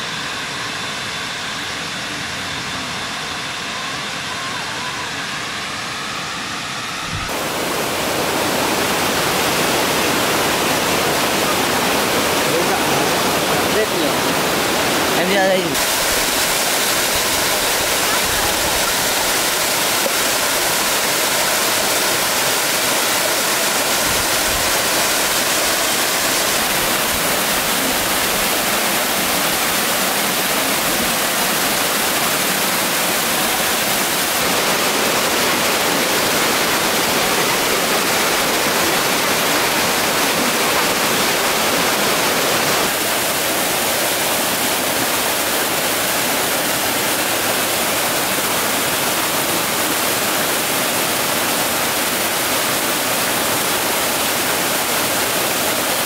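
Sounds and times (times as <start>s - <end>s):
waterfall rushing: 7.1s - 56.0s.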